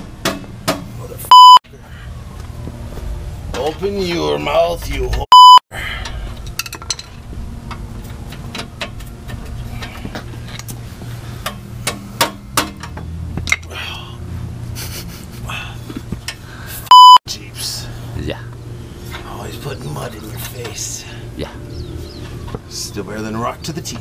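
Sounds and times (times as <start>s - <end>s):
censor bleep tone: 1.3s - 1.6s, 5.3s - 5.6s, 16.9s - 17.2s.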